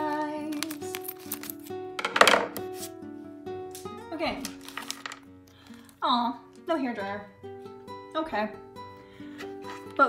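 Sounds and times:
background music: 0.0s - 10.0s
plastic packet crinkling: 0.5s - 1.7s, 4.4s - 6.0s.

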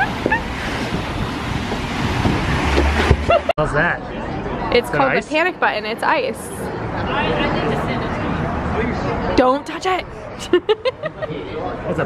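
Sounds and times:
wind over microphone: 0.0s - 3.5s.

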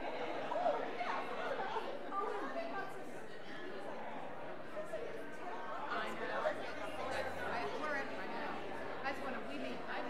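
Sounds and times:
crowd chatter in large room: 0.0s - 10.0s.

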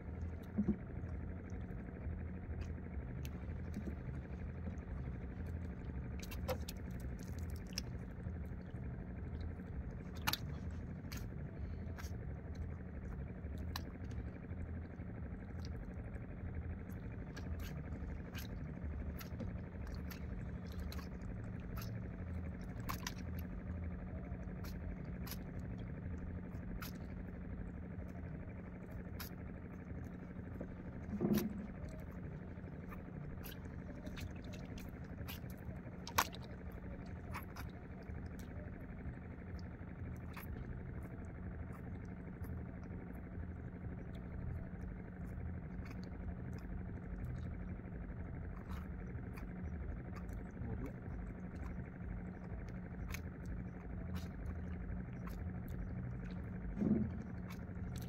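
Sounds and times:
motor humming: 0.0s - 58.0s.

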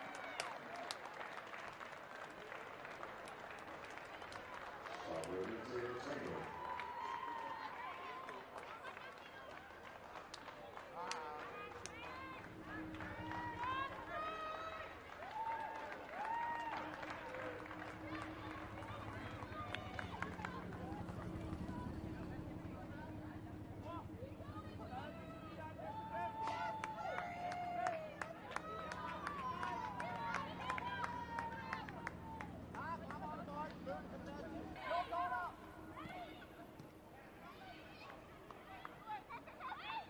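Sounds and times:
stadium background noise: 0.0s - 40.0s
excited shouts and cheers: 6.4s - 8.9s, 11.1s - 23.2s, 23.8s - 36.7s, 37.4s - 40.0s.

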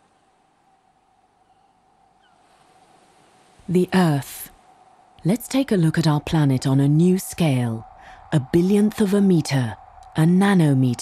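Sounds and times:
faint hiss: 0.0s - 11.0s
faint steady tone: 0.0s - 11.0s.

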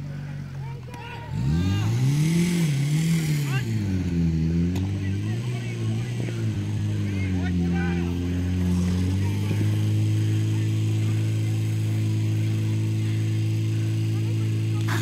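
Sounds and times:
fire pump engine revving: 0.0s - 15.0s
people shouting: 0.6s - 2.5s.

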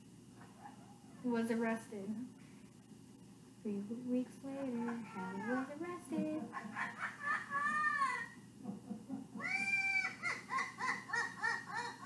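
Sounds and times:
parrot laughing through speaker: 6.4s - 12.0s.

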